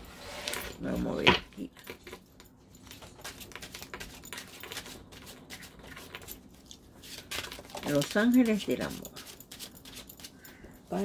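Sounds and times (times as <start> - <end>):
playing cards shuffling: 2.8 - 6.3, 7.0 - 10.4.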